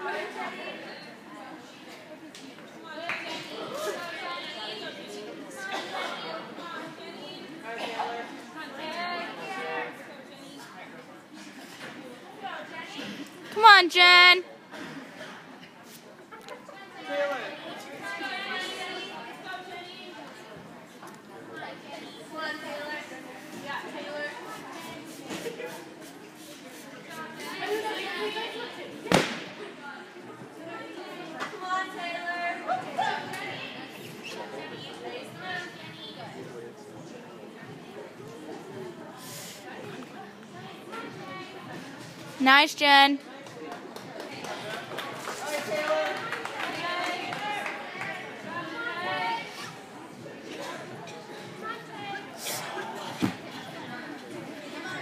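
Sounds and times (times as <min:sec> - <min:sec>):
indistinct chatter in echoing hall: 0:00.0 - 0:55.0.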